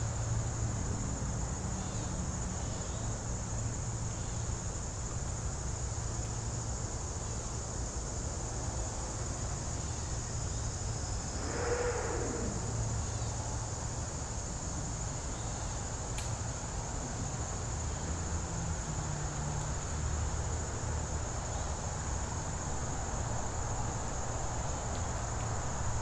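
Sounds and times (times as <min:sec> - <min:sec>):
insects chirring: 0:00.0 - 0:26.0
low outdoor rumble: 0:11.2 - 0:14.2
passing sound falling in pitch: 0:11.3 - 0:13.4.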